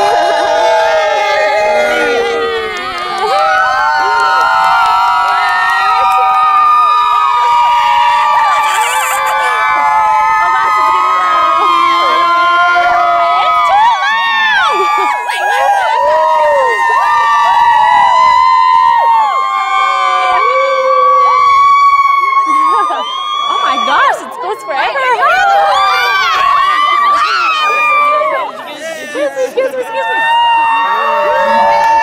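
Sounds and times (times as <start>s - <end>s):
crowd cheering and shouting: 0.0s - 32.0s.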